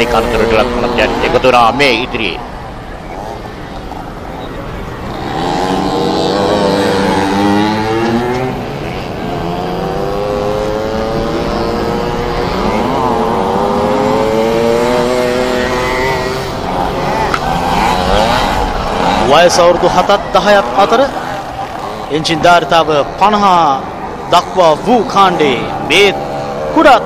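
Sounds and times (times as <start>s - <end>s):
minibike engines revving: 0.0s - 27.0s.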